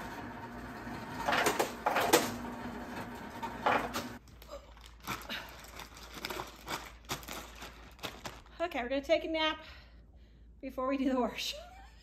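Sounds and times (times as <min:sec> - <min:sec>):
ice dispenser humming: 0:00.0 - 0:04.2
plastic bag rustling: 0:04.2 - 0:08.8.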